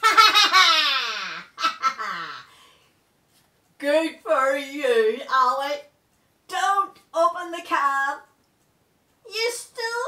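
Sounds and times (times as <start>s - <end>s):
high puppet voice laughing: 0.0s - 2.5s.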